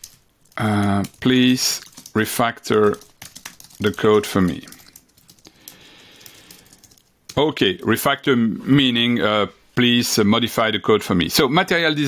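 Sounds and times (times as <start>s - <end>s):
keyboard typing: 0.0s - 7.6s.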